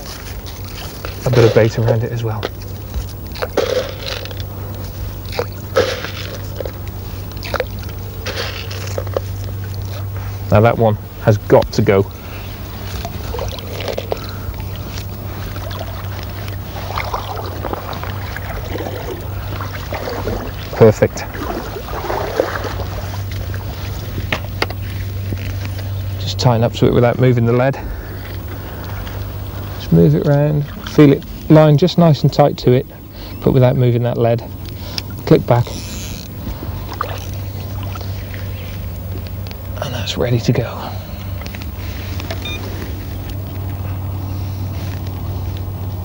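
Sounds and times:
water sloshing and splashing: 0.0 - 10.8, 11.5 - 25.9, 34.8 - 39.8
steady low hum: 0.0 - 46.0.

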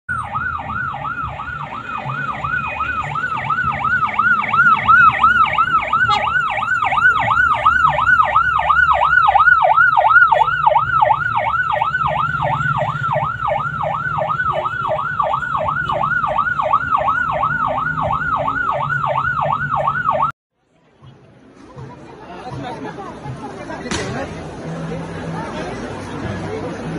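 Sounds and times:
electronic siren yelping: 0.1 - 20.3.

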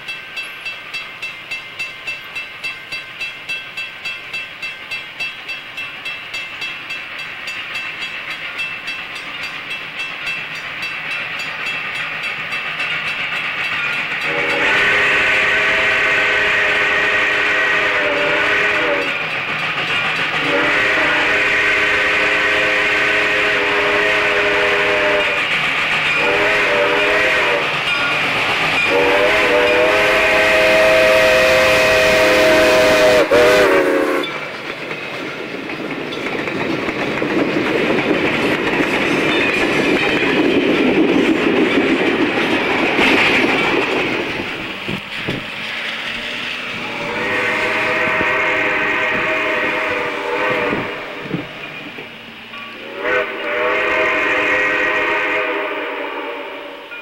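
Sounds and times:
steam whistle blasts: 14.2 - 19.2, 20.4 - 25.5, 26.2 - 27.8, 28.8 - 34.4, 46.2 - 51.6, 52.7 - 57.0.

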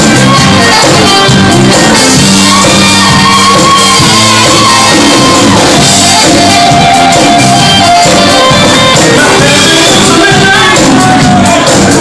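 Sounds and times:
bass and keyboards: 0.0 - 12.0
saxophone section playing: 0.0 - 12.0.

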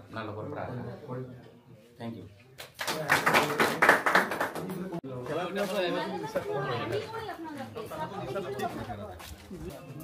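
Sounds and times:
small group clapping: 2.6 - 5.0.

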